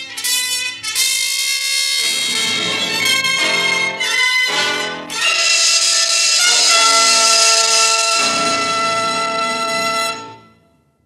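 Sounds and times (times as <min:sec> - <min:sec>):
orchestral music with brass: 0:00.0 - 0:10.7.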